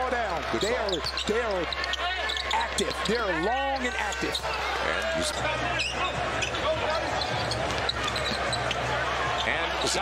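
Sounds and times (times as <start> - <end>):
arena crowd hum: 0.0 - 10.0.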